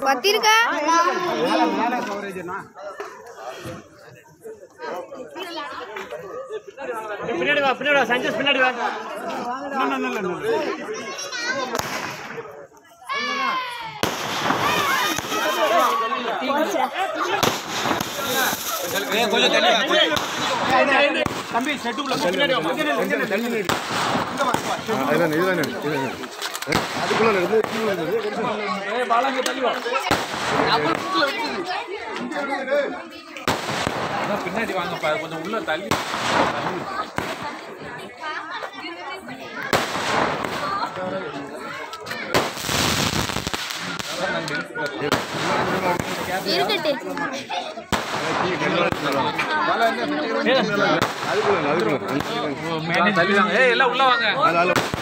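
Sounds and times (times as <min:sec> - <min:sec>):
fireworks exploding: 0:11.1 - 0:31.8, 0:33.3 - 0:38.1, 0:39.5 - 0:55.0
sharp firework bang: 0:11.7 - 0:12.4, 0:14.0 - 0:15.8, 0:17.4 - 0:19.1, 0:23.7 - 0:24.9, 0:33.4 - 0:34.4, 0:35.9 - 0:37.4, 0:39.7 - 0:40.8, 0:47.9 - 0:49.0
small firework pop: 0:11.7 - 0:12.4
people shouting excitedly: 0:13.0 - 0:21.2.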